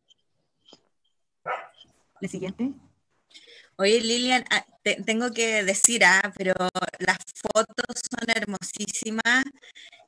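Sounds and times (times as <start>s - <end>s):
dog barking: 1.4s - 1.8s.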